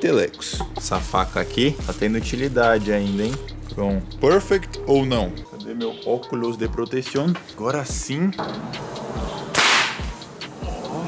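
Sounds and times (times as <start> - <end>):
cartridge primer sharp crack: 9.6 - 10.0.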